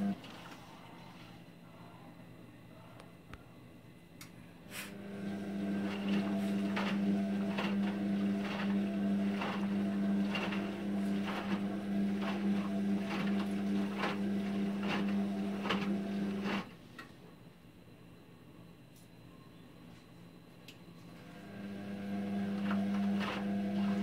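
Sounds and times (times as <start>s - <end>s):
washing machine motor humming: 0.0s - 1.3s, 4.9s - 17.0s, 21.0s - 24.0s.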